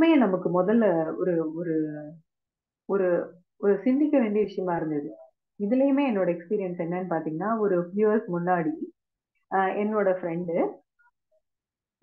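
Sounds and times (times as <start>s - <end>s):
woman talking: 0.0s - 2.2s, 2.9s - 8.9s, 9.5s - 10.7s.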